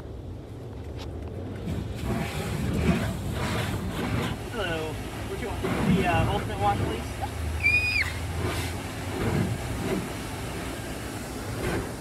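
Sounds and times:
water jets spraying on car: 1.0s - 12.0s.

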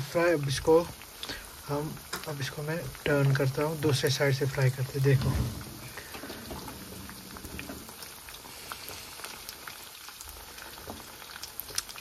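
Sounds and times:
fish frying in hot oil: 0.0s - 12.0s.

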